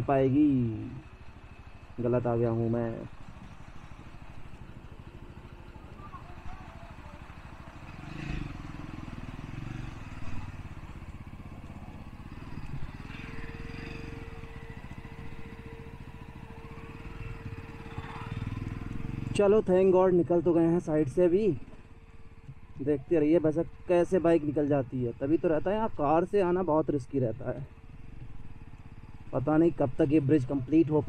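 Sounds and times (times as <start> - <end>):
motorcycle engine running: 0.0 - 31.0.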